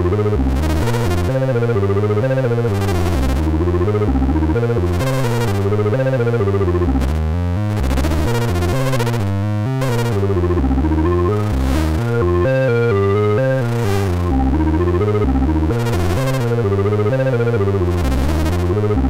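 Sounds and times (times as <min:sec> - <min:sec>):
synthesizer sequenced line: 0:00.0 - 0:19.0.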